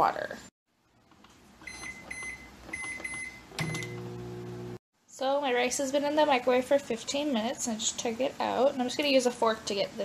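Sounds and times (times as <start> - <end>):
microwave keypad beeps: 1.6 - 4.1
microwave oven humming: 2.1 - 4.8.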